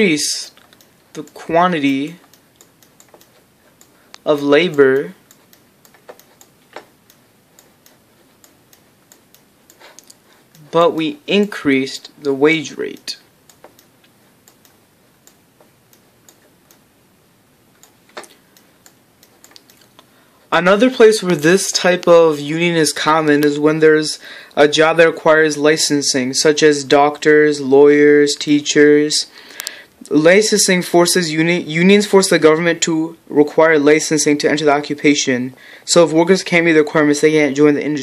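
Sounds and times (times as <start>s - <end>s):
light computer mouse clicks: 0.5s - 10.7s, 12.9s - 16.9s, 17.8s - 20.1s.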